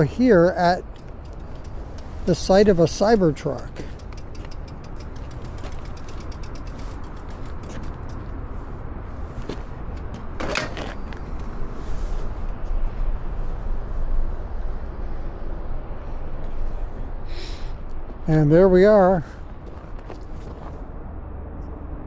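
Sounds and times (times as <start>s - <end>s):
freewheel ratchet ticking: 0.4s - 8.3s.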